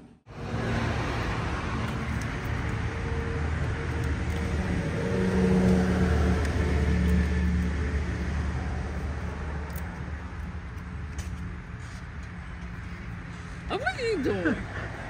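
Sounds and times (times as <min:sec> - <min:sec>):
vehicle engine rumbling: 0:00.0 - 0:15.0.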